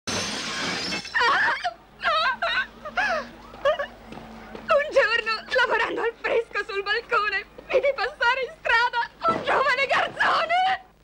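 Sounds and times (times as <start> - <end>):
loud noisy crash: 0.1 - 1.3
woman wailing and sobbing: 1.2 - 3.9.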